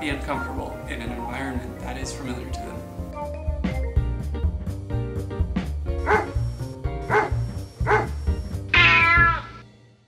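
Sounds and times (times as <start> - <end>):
background music with bass beat: 0.9 - 9.6
cat meowing: 8.7 - 9.6.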